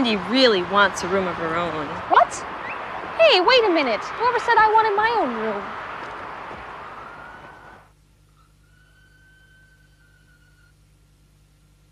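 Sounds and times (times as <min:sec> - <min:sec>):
street ambience: 0:00.0 - 0:10.1
faint low hum: 0:00.0 - 0:11.9
thin high whine: 0:06.7 - 0:11.9.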